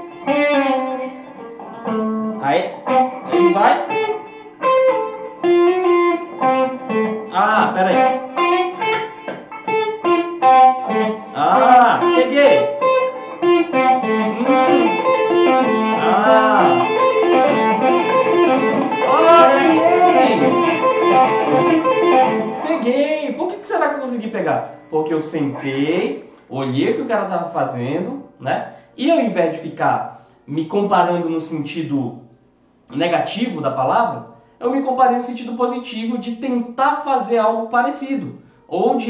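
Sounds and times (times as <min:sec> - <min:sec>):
electric guitar solo: 0:00.0 - 0:23.4, 0:24.6 - 0:26.3.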